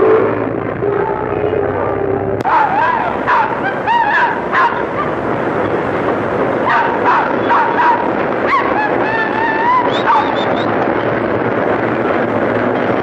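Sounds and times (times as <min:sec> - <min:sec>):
street traffic: 0:00.0 - 0:13.0.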